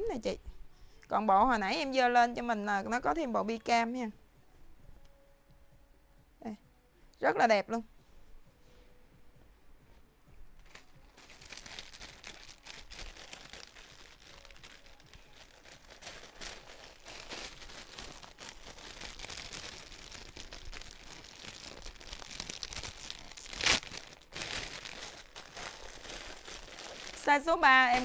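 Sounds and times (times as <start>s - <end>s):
plastic bag crinkling: 10.6s - 28.0s.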